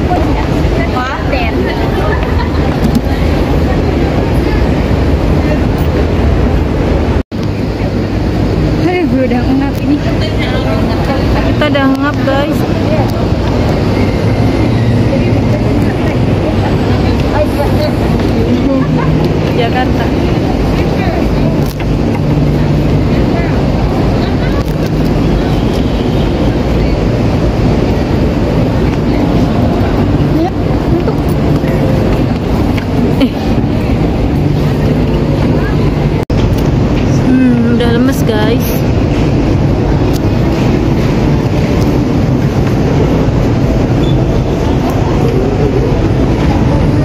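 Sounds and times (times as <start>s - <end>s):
indistinct voices: 0.0s - 47.0s
low rumble of city noise: 0.0s - 47.0s.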